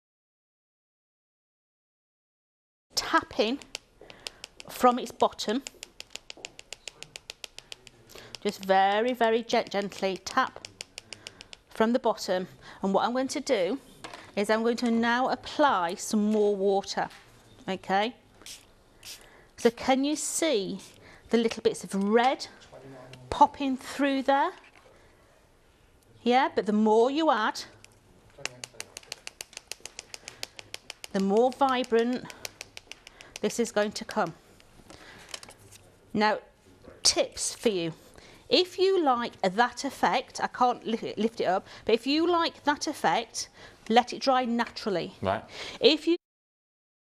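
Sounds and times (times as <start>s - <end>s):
quick taps on plastic bottle: 10.5s - 11.7s, 28.4s - 33.5s.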